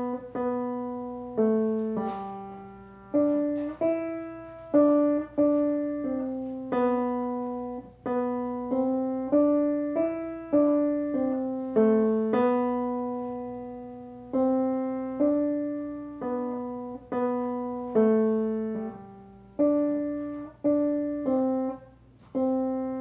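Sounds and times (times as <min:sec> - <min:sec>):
slow solo piano melody: 0:00.0 - 0:23.0.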